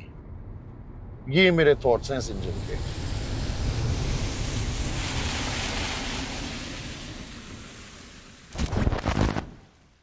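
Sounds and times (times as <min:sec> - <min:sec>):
road and tyre noise: 0:00.0 - 0:10.0.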